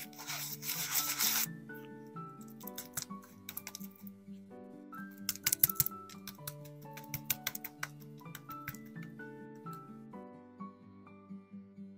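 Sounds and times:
brush scrubbing a coin: 0:00.0 - 0:01.5.

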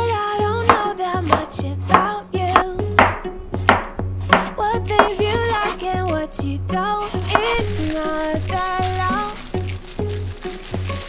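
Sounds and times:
background music with beat: 0:00.0 - 0:11.0
knife chopping on wooden board: 0:00.6 - 0:05.8.

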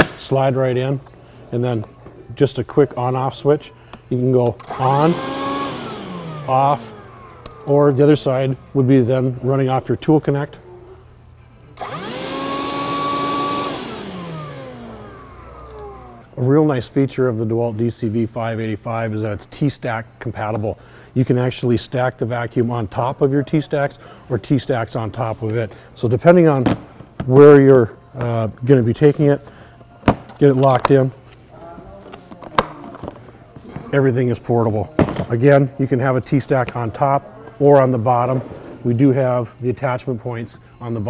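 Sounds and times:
dust extractor motor whining: 0:04.5 - 0:08.6, 0:11.8 - 0:16.3.

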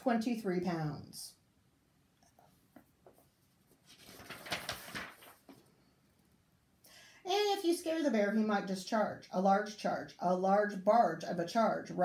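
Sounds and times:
book pages turning: 0:02.7 - 0:05.7.

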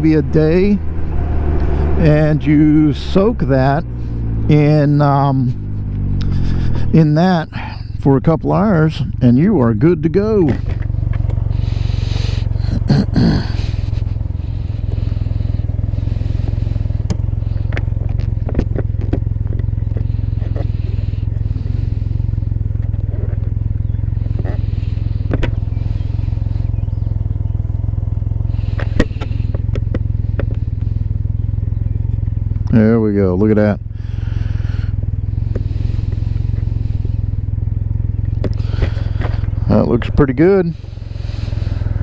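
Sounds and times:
engine idling: 0:00.0 - 0:42.0.

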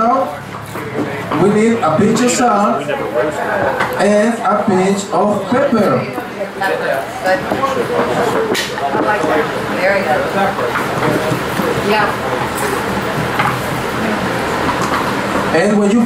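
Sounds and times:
overlapping chatter: 0:00.0 - 0:16.0
steady low hum: 0:00.0 - 0:16.0.

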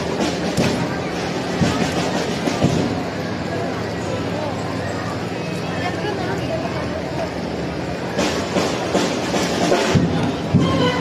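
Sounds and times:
drum hits: 0:00.0 - 0:03.2, 0:08.2 - 0:11.0
crowd noise: 0:00.0 - 0:11.0
live band music: 0:08.4 - 0:11.0.

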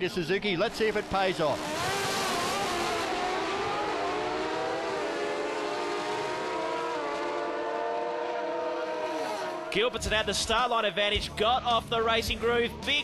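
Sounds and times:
drag racing motorcycles at full throttle: 0:00.7 - 0:09.8.

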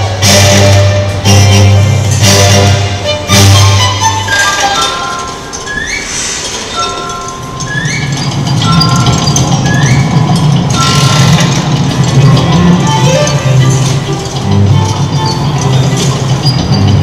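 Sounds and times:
clinking bell-like music: 0:00.0 - 0:17.0.

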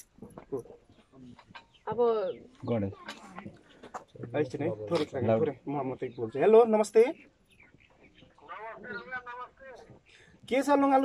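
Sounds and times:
chickens clucking: 0:00.5 - 0:10.2.

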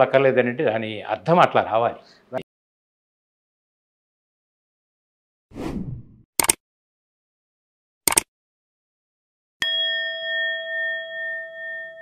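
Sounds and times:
notification bell chime: 0:09.6 - 0:12.0.

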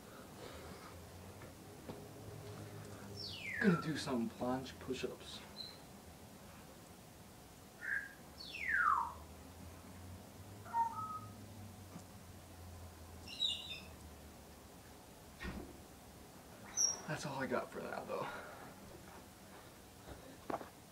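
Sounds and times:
faint low hum: 0:00.0 - 0:20.9
bird chirps and whistles: 0:03.2 - 0:04.0, 0:05.6 - 0:05.8, 0:07.8 - 0:09.2, 0:10.7 - 0:11.4, 0:13.3 - 0:13.9, 0:16.7 - 0:17.0.

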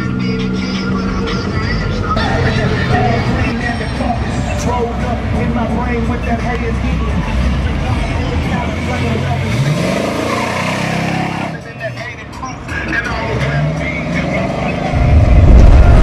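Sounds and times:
car engine revving: 0:00.0 - 0:16.0
cars passing: 0:00.0 - 0:16.0
people's voices: 0:00.0 - 0:16.0
loud deep explosion boom: 0:15.0 - 0:16.0.

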